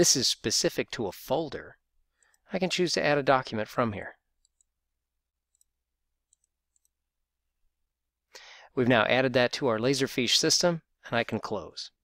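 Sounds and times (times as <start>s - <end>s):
computer mouse clicks: 4.4s - 4.8s, 5.5s - 7.0s.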